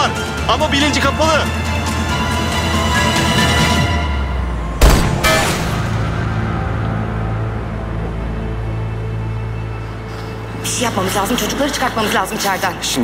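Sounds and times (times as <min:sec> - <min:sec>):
dark tense film score: 0:00.0 - 0:13.0
rifle shots: 0:04.8 - 0:05.9.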